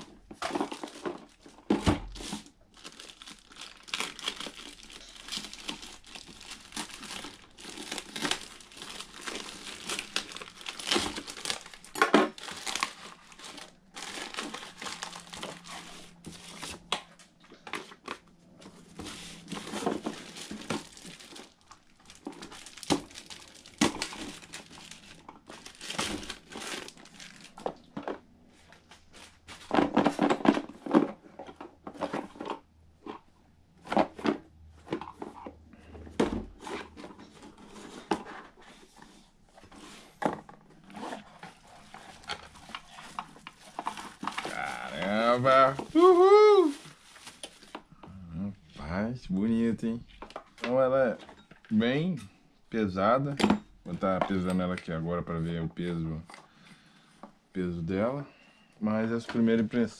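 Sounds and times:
plastic packaging crinkling: 0:00.0 - 0:33.2, 0:40.8 - 0:47.9.

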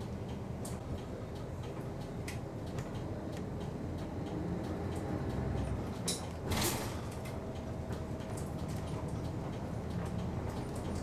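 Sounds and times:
bus engine idling: 0:00.0 - 0:11.0.

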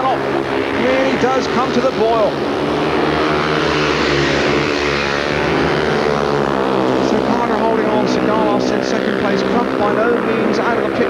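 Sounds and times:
motorcycles racing: 0:00.0 - 0:11.0.

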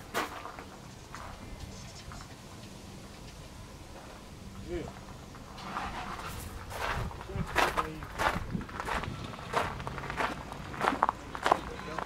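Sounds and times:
footsteps on gravel: 0:00.0 - 0:01.4, 0:05.6 - 0:12.0.

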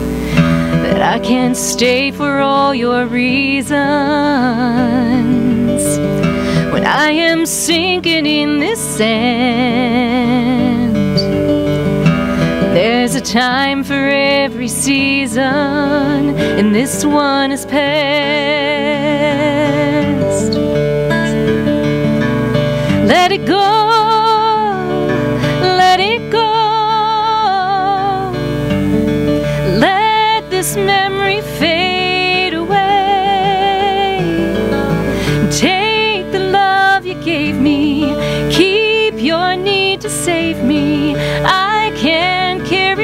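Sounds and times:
woman singing: 0:00.0 - 0:11.4, 0:12.6 - 0:20.7, 0:22.9 - 0:28.8, 0:29.4 - 0:43.0
acoustic guitar: 0:00.0 - 0:43.0.

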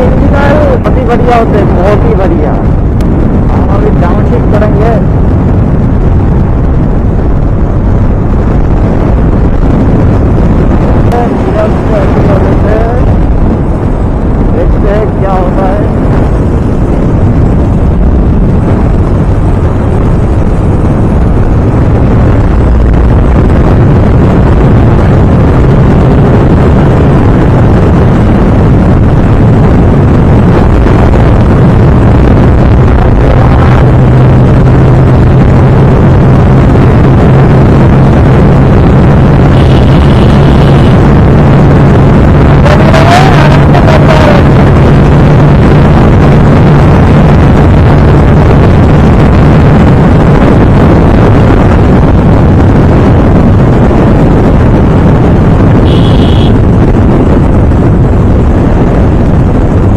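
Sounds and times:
motorcycle engine at full throttle: 0:00.0 - 0:59.9
wind noise on microphone: 0:00.0 - 0:59.9.

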